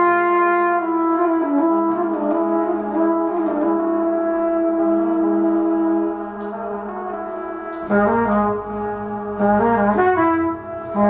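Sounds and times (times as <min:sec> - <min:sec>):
trumpet brass drone: 0:00.0 - 0:11.0.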